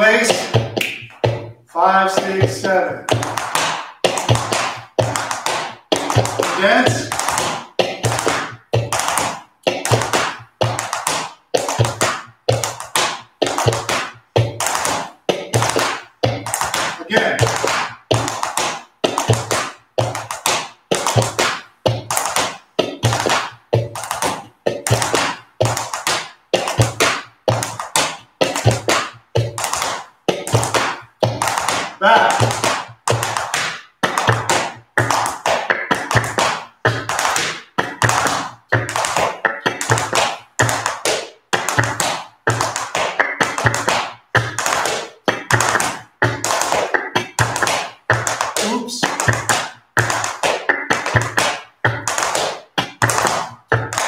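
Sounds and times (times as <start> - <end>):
heeled shoes tapping on wooden floor: 0.0 - 54.0
music: 34.1 - 54.0.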